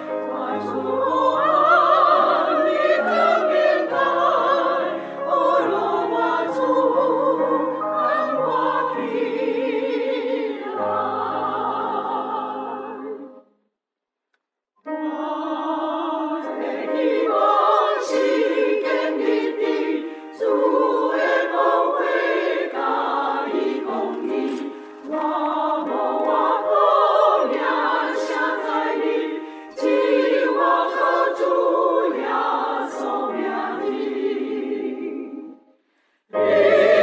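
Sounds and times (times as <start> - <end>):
church choir singing a hymn: 0.0 - 13.5, 14.9 - 37.0.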